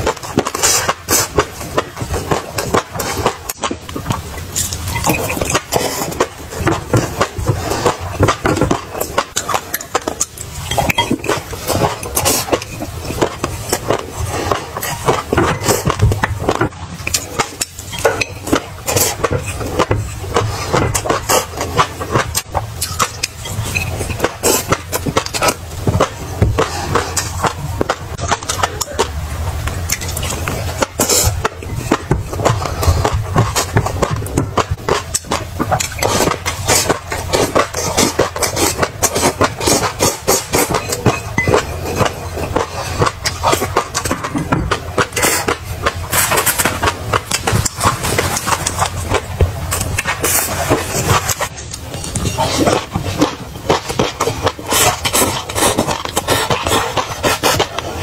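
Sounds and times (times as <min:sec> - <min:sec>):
wet chewing and lip smacking: 0:00.1 - 0:58.0.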